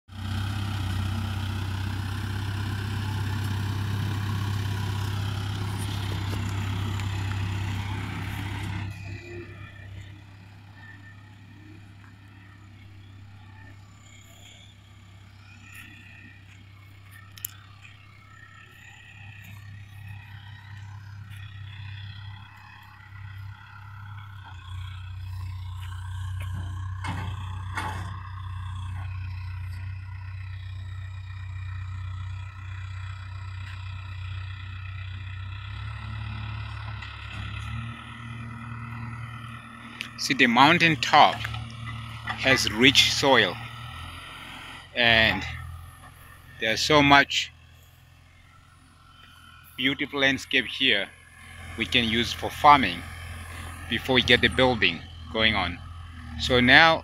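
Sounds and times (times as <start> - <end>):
diesel engine droning: 0.1 - 57.0.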